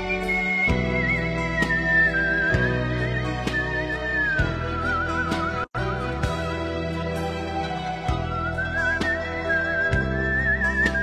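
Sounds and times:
soft instrumental backing music: 0.0s - 11.0s
whistled melody: 0.0s - 11.0s.

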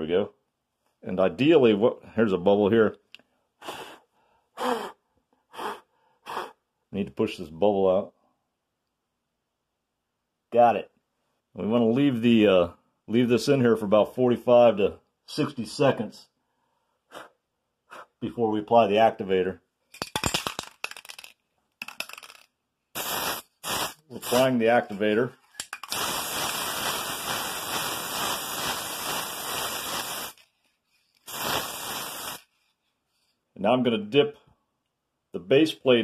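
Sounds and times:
short puffs of breath: 3.2s - 6.6s, 16.4s - 18.2s
aerosol can rattling when shaken: 19.9s - 32.6s.

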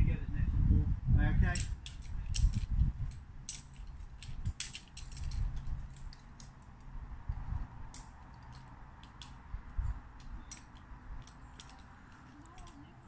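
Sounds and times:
carabiners clicking and clinking: 1.5s - 6.9s, 7.9s - 13.0s.

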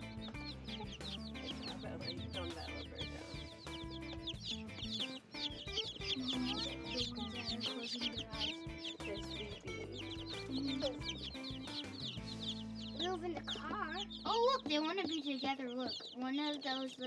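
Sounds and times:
baby chicks peeping: 0.0s - 17.0s
soft background music: 0.0s - 17.0s.

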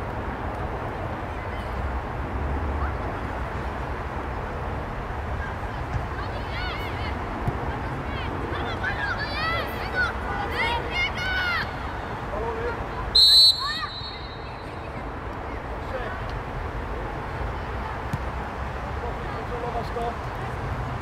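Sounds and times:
outdoor background noise: 0.0s - 21.0s
distant shouts: 8.1s - 15.0s
referee's whistle blast: 13.2s - 14.6s.

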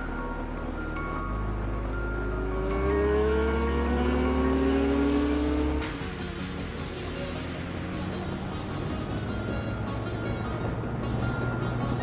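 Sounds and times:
background music with bass: 0.0s - 12.0s
motorcycle engine accelerating: 1.8s - 12.0s.

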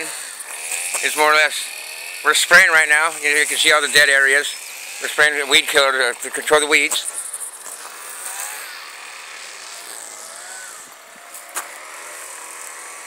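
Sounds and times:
sprayer hissing: 0.0s - 13.0s.

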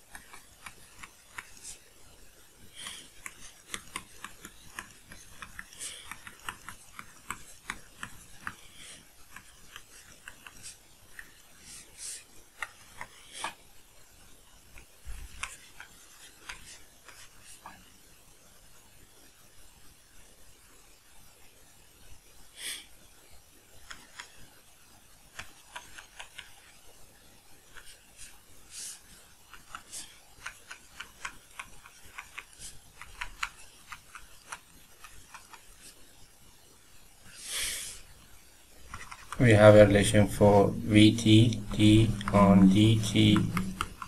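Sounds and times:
stylus rubbing on tablet: 0.0s - 13.7s, 14.6s - 17.9s, 25.3s - 26.8s, 27.6s - 36.2s, 38.8s - 44.0s
stylus tapping on tablet: 3.2s - 8.6s, 41.5s - 44.0s.

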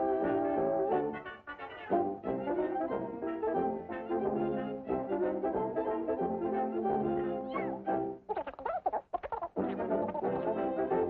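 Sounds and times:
brass cartoon music: 0.0s - 8.2s, 9.6s - 11.0s.

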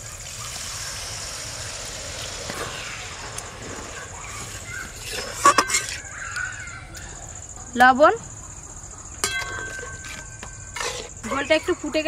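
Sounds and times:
crow cawing: 5.8s - 7.1s.

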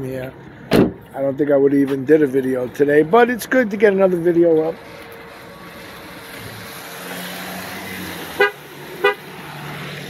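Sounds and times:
background traffic noise: 0.0s - 10.0s
car horn toots: 8.4s - 9.3s.

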